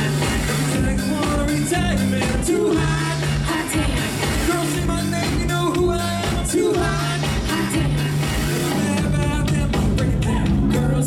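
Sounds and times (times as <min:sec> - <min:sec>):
bass line: 0:00.0 - 0:11.0
drum kit beat: 0:00.0 - 0:11.0
funk band playing: 0:00.0 - 0:11.0.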